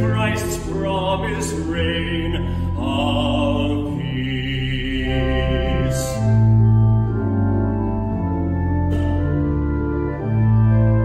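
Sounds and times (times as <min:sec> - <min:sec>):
man singing a hymn: 0:00.0 - 0:06.6
organ accompaniment: 0:00.0 - 0:11.0.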